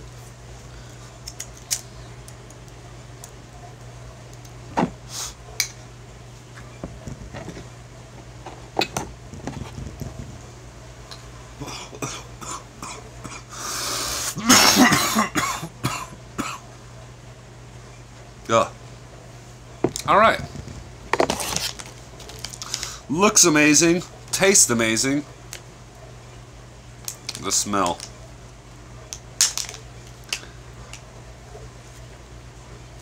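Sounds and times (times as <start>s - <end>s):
faint steady hum: 0.0s - 33.0s
man coughing: 11.6s - 13.5s, 14.4s - 16.6s.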